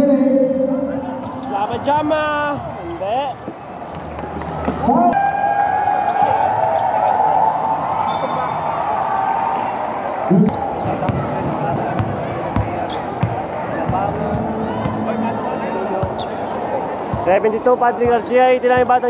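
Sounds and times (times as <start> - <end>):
crowd shouting: 4.8 - 17.7
shoe squeaks: 8.1 - 8.6, 12.7 - 13.9, 16.0 - 16.5
basketball bouncing: 10.3 - 15.0.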